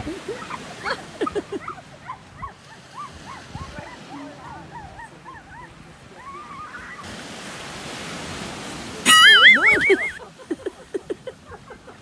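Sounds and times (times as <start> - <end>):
surf breaking on beach: 0.0 - 12.0
high squeaky calls: 9.1 - 10.2.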